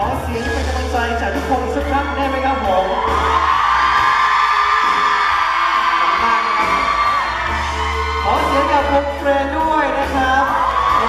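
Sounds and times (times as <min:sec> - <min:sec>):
band backing music: 0:00.0 - 0:11.0
audience cheering: 0:01.8 - 0:11.0.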